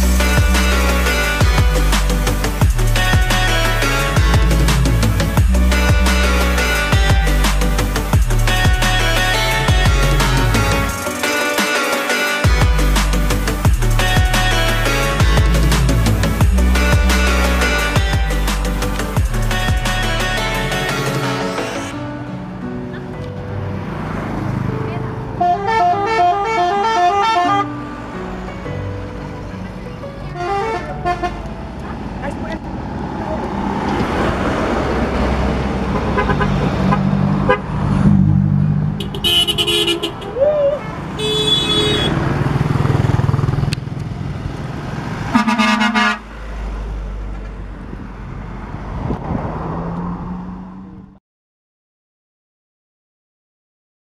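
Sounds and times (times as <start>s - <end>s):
musical truck horn melody: 0.0s - 22.3s, 25.3s - 29.4s, 30.2s - 31.6s, 35.8s - 42.4s, 45.3s - 46.6s
truck engines and tyres: 0.0s - 51.2s
truck horn blasts: 25.4s - 27.8s, 30.3s - 31.4s, 35.9s - 37.9s, 38.9s - 42.4s, 45.3s - 46.4s.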